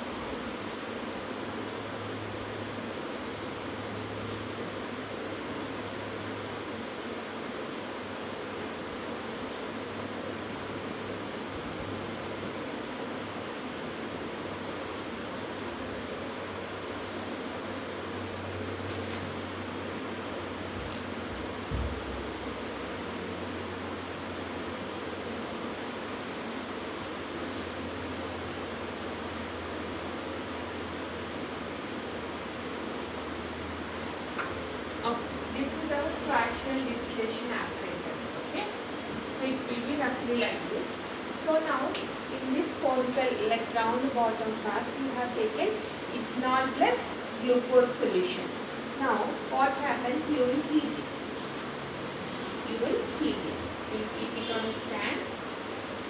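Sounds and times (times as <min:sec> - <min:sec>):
steady background hiss: 0:00.0 - 0:56.0
soft low thump: 0:21.7 - 0:22.3.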